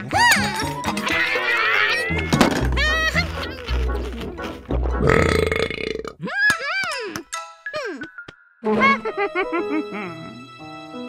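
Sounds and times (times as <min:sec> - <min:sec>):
long rough burp: 0:05.0 - 0:06.2.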